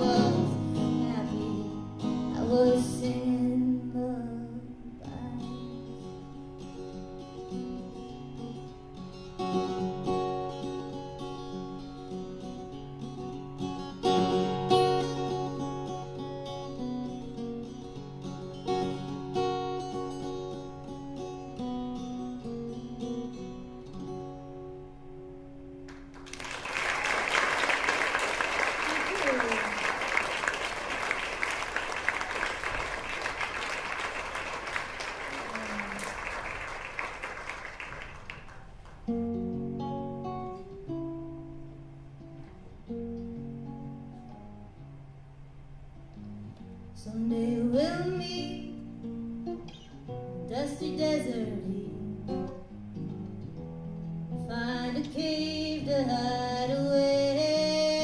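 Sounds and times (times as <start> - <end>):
acoustic guitar playing: 0.0 - 58.0
audience applauding: 25.9 - 39.1.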